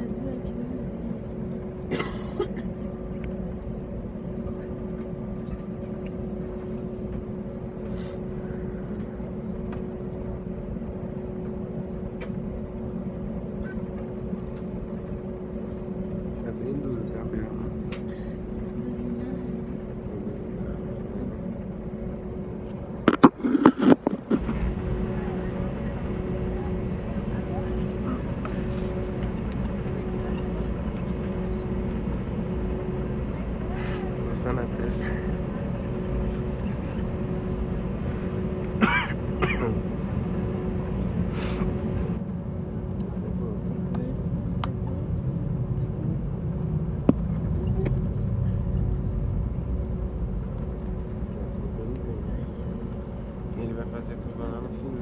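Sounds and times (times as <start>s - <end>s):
constant humming tone: 0.0s - 55.0s
jet airliner engines droning: 0.0s - 55.0s
person coughing: 1.9s - 2.8s, 38.8s - 39.8s.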